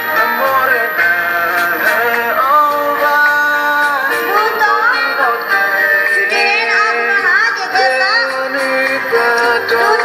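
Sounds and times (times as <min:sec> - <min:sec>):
lead singer's gliding voice: 0:00.0 - 0:10.0
live band music: 0:00.0 - 0:10.0.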